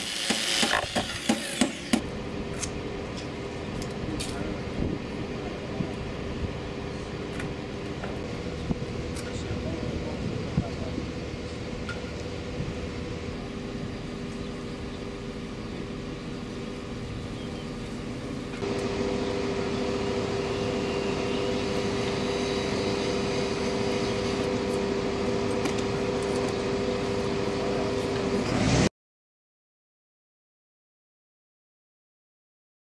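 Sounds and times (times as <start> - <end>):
mechanical hum with whine: 0.0 - 28.9.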